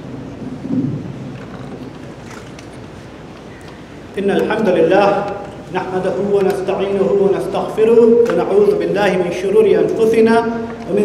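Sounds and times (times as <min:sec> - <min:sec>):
microphone handling rumble: 0:00.0 - 0:02.3.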